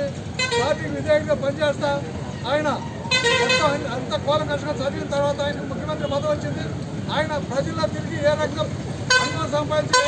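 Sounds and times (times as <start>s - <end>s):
man speaking: 0.0s - 10.0s
vehicle horn honking: 3.1s - 3.8s, 9.1s - 10.0s.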